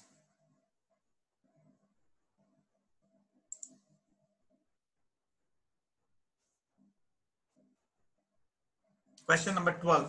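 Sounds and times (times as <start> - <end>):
sharp clicks: 3.5 - 3.9.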